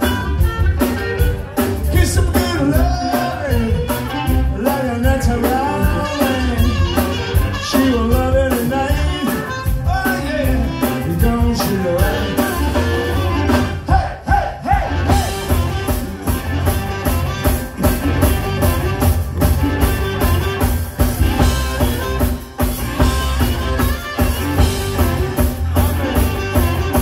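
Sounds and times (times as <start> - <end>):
amplified harmonica: 0.0 - 1.8, 5.6 - 13.9, 14.9 - 27.0
electric guitars: 0.0 - 14.0, 14.6 - 27.0
bass guitar: 0.0 - 27.0
drums: 0.0 - 27.0.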